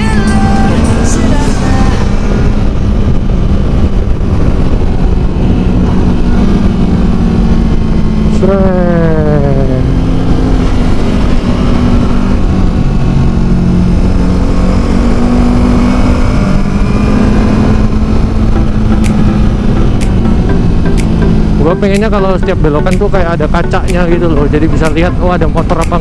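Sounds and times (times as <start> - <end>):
motorcycle engine running: 0.0 - 26.0
wind rushing over microphone: 0.0 - 26.0
sharp clicks: 18.9 - 22.2, 22.8 - 26.0.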